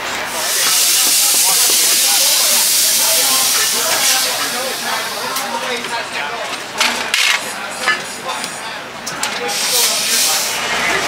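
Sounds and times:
compressed air hissing: 0:00.3 - 0:05.5, 0:09.5 - 0:10.6.

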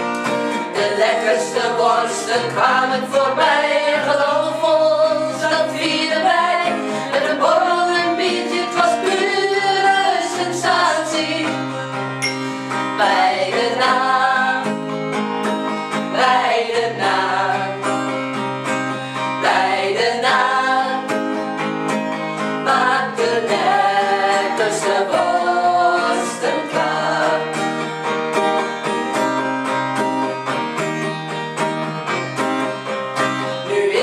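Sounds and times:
acoustic guitar: 0:00.0 - 0:34.0
women singing together: 0:00.5 - 0:11.9, 0:12.7 - 0:14.9, 0:16.0 - 0:18.2, 0:19.4 - 0:21.4, 0:22.6 - 0:27.8, 0:33.6 - 0:34.0.

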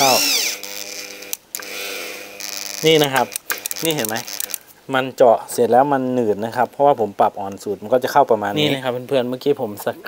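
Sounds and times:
drill motor humming under load: 0:00.0 - 0:04.6.

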